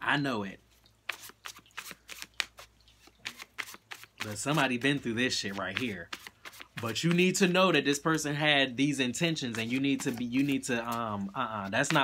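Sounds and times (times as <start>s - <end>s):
cards being shuffled: 1.1s - 7.5s, 9.4s - 12.0s.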